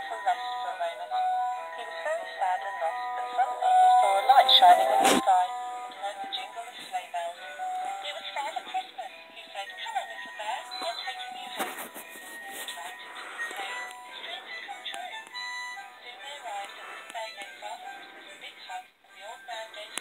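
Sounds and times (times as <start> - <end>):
tinny electronic christmas tune: 0.0 - 6.8, 10.1 - 16.1.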